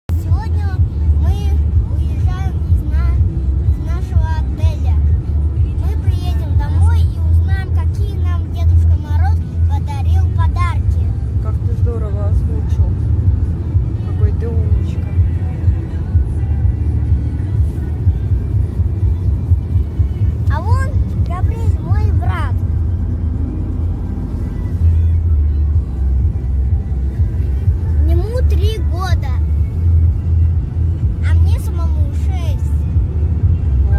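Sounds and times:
car road and engine rumble: 0:00.1 - 0:33.9.

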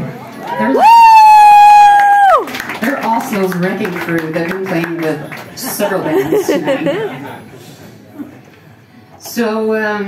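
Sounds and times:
person whooping: 0:00.6 - 0:02.5.

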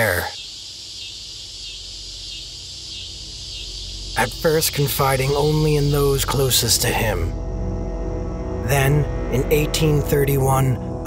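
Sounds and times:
high chirring hiss: 0:00.0 - 0:10.4
low sustained drone: 0:01.3 - 0:11.0.

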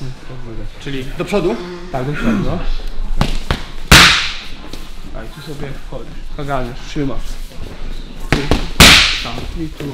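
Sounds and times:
punches smacking training pads: 0:03.2 - 0:04.4, 0:08.3 - 0:09.5.

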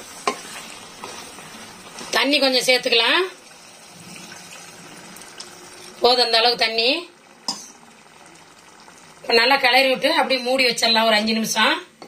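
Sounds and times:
water pouring into a pot: 0:02.4 - 0:09.8.

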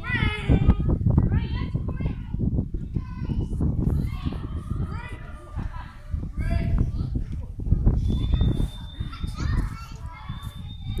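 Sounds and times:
distant children chattering: 0:01.5 - 0:11.0.

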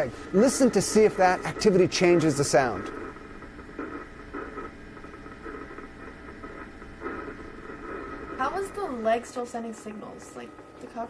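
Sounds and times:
amplified nerve impulse crackle: 0:00.0 - 0:08.4.

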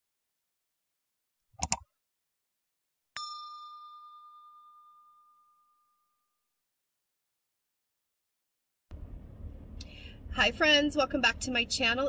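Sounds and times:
bell-like ding chime: 0:03.2 - 0:06.4.

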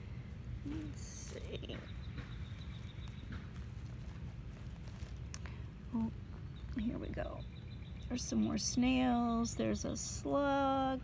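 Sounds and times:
low rumble: 0:00.0 - 0:08.6
footsteps crunching dry leaves: 0:00.4 - 0:06.0.

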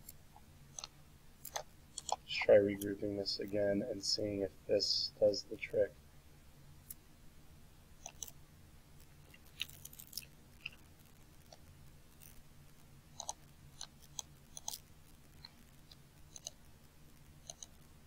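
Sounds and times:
faint steady hum: 0:00.0 - 0:18.0
computer mouse clicks: 0:17.4 - 0:17.8.

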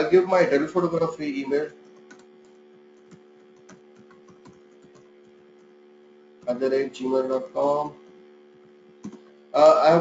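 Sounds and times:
electrical hum: 0:00.0 - 0:10.0
computer keyboard typing: 0:00.9 - 0:05.8, 0:09.0 - 0:09.3.

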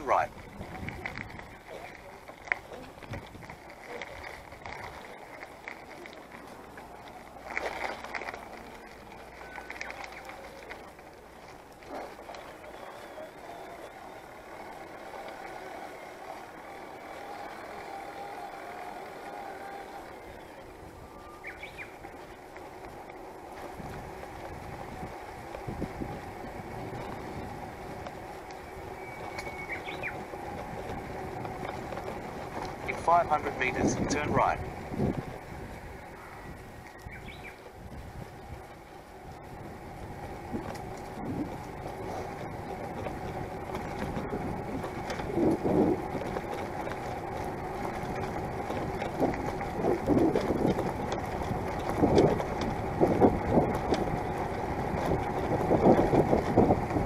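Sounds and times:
bicycle rattle: 0:00.0 - 0:57.0
bicycle tyre and drivetrain noise: 0:00.0 - 0:57.0
faint motor hum: 0:00.0 - 0:57.0.

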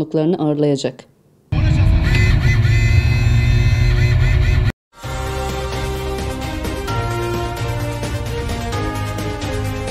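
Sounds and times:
road noise: 0:01.6 - 0:04.7
music: 0:04.0 - 0:09.9.

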